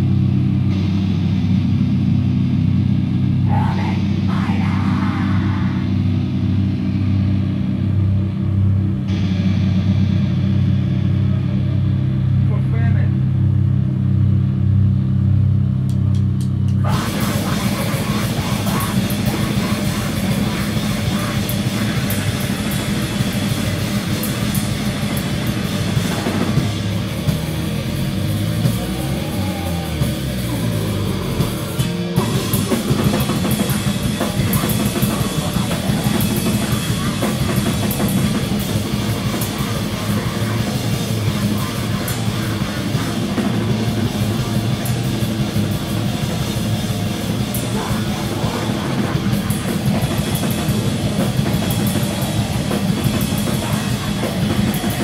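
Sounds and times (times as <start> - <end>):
grindcore band playing live: 0.0 - 55.0.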